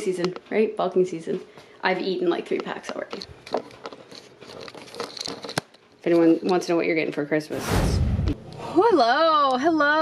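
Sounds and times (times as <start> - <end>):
rustling and crinkling handling: 2.2 - 6.8.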